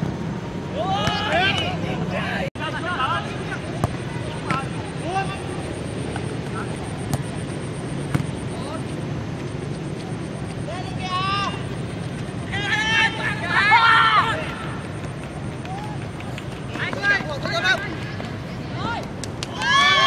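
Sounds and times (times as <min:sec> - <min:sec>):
steady background noise: 0:00.0 - 0:20.0
players shouting calls: 0:00.7 - 0:07.4, 0:10.6 - 0:20.0.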